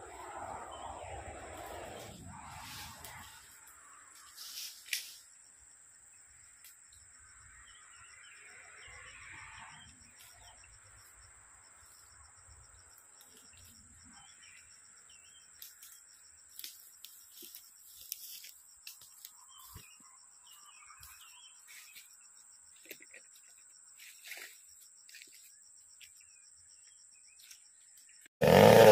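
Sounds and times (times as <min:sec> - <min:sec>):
insect drone: 0:00.0 - 0:28.9
rustles in dry leaves: 0:01.3 - 0:05.3.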